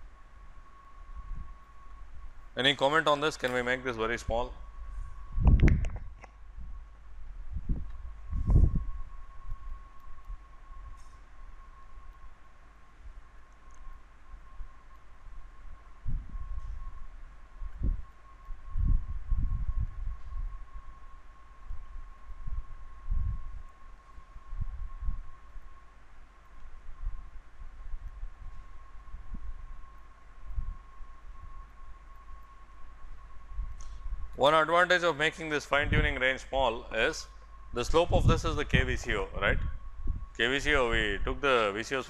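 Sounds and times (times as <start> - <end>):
high-pitched electrical whine: 0.0 - 42.0.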